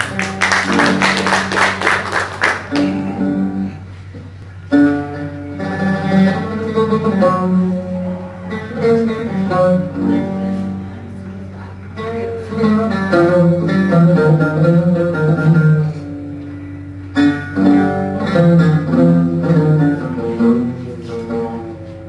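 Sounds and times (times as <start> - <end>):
solo oud melody: 4.7 - 22.0.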